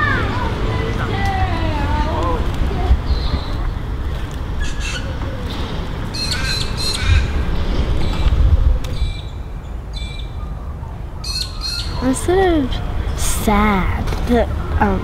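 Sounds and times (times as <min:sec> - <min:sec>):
birds calling: 0:03.0 - 0:13.2.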